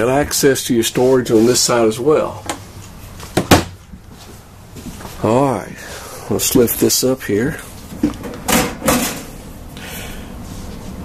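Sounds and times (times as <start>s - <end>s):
cabinet door shutting: 3.4s - 3.8s.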